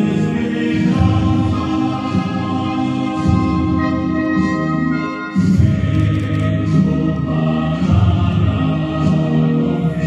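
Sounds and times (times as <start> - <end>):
choir singing a hymn: 0.0 - 10.0
instrumental accompaniment: 0.1 - 10.0.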